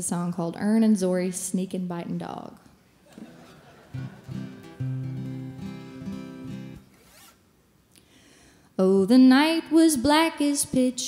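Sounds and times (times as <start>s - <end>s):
acoustic guitar: 3.1s - 7.4s.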